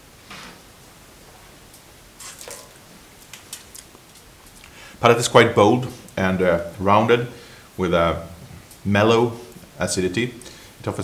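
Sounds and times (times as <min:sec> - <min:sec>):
person spitting wine: 0:02.2 - 0:02.8.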